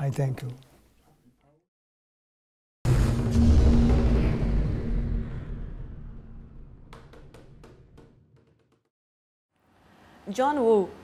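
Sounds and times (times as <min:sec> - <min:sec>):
low rumbling music sting: 0:02.9 - 0:07.0.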